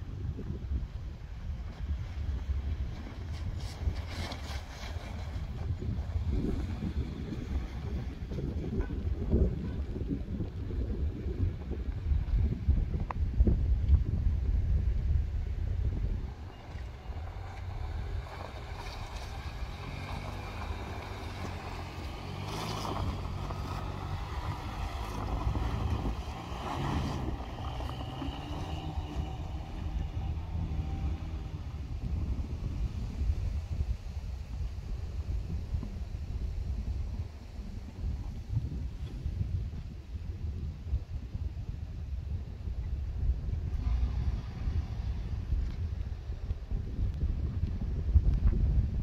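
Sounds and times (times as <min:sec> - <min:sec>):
car engine driving on snow: 0:00.0 - 0:49.0
wind buffeting microphone: 0:00.0 - 0:49.0.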